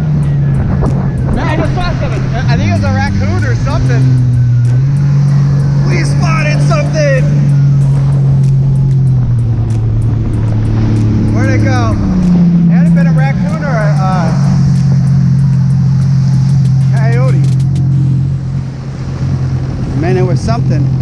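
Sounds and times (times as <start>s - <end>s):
jet ski engine running: 0.0s - 21.0s.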